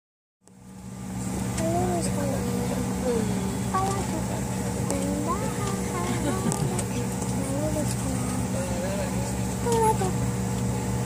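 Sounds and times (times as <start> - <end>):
jet engine drone in cabin: 0.5 - 11.0.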